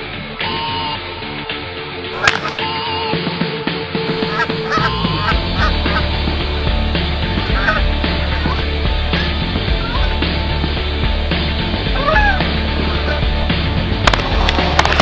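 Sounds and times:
music: 0:00.0 - 0:15.0
geese honking: 0:02.2 - 0:03.0, 0:04.1 - 0:15.0.

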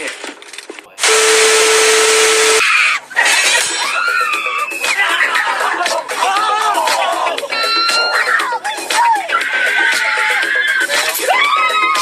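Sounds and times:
tv static hiss: 0:01.0 - 0:02.6.

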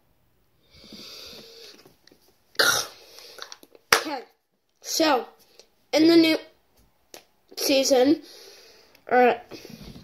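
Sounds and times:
boy hissing breath through mouth: 0:00.7 - 0:01.8, 0:08.2 - 0:08.9.

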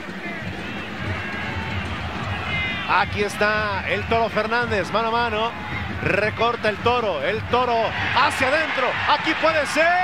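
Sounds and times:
distant shouts and voices: 0:07.5 - 0:10.0.

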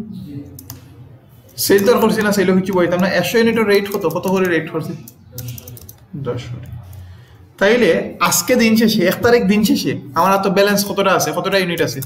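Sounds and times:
keyboard key presses: 0:01.5 - 0:06.0.

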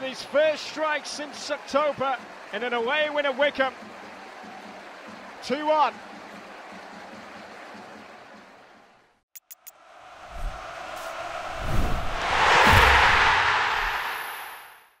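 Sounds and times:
stadium crowd noise: 0:00.0 - 0:09.2, 0:09.8 - 0:14.8
whooshing swell: 0:09.8 - 0:15.0
low booms: 0:11.5 - 0:14.7.

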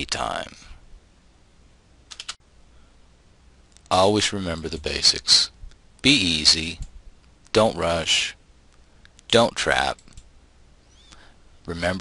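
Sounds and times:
faint room hum: 0:00.0 - 0:12.0
sharp clicks: 0:02.1 - 0:02.4.

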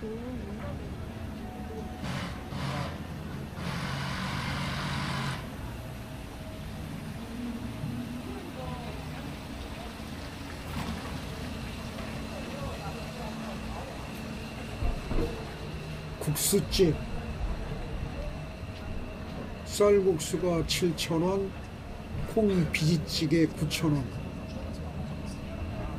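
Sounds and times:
faint voices of passers-by: 0:00.0 - 0:25.9.

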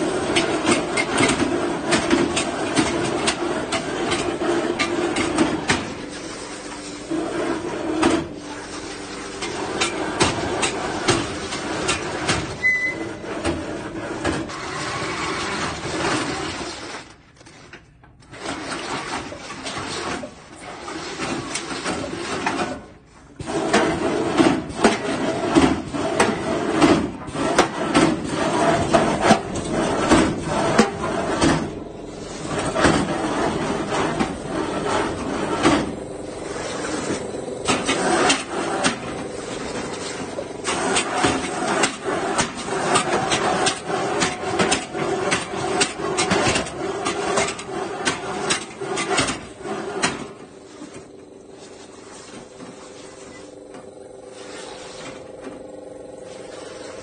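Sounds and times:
robot suit motors grinding and rattling: 0:13.2 - 0:57.0.

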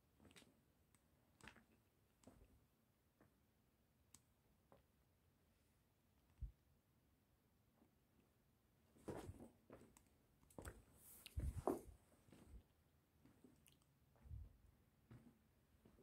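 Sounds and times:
faint scuffs and soft knocks: 0:08.9 - 0:12.6, 0:13.2 - 0:16.0.

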